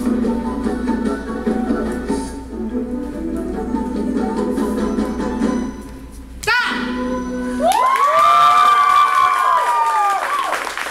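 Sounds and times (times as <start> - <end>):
people cheering woo: 7.6 - 10.8.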